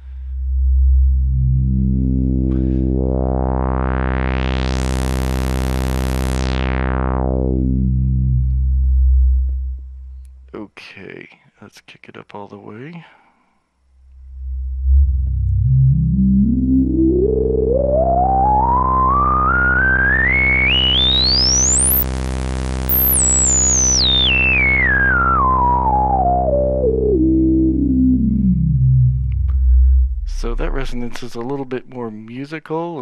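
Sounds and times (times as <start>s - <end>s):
synthesizer filter sweep: 0.0s - 10.0s, 14.2s - 32.2s
resonant filter whistle: 14.3s - 22.1s, 22.9s - 31.0s.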